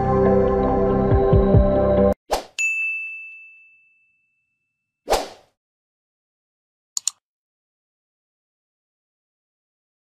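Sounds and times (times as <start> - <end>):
background music: 0.0 - 2.2
bright bell-like ding: 2.6 - 4.7.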